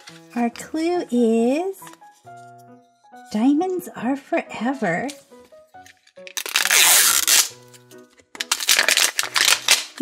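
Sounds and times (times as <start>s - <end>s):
background music: 0.0s - 10.0s
plastic wrap rustling: 6.3s - 7.5s, 8.4s - 10.0s.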